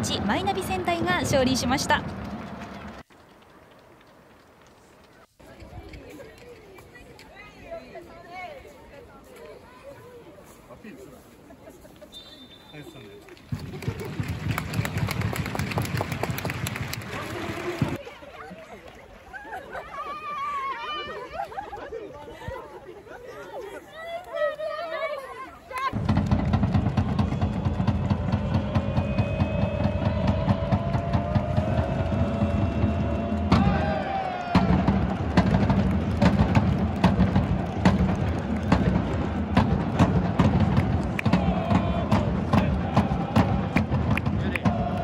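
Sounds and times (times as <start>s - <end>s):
people clapping: 1.4s - 5.3s, 13.2s - 19.7s, 30.6s - 45.0s
drum beats: 25.9s - 45.0s.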